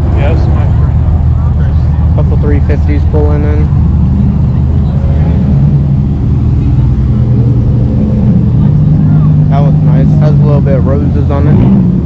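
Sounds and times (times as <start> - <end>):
car engines at low revs: 0.0 - 12.0.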